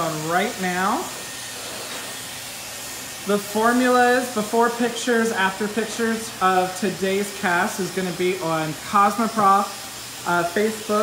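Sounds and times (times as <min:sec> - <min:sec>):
hair dryer running: 0:00.0 - 0:11.0.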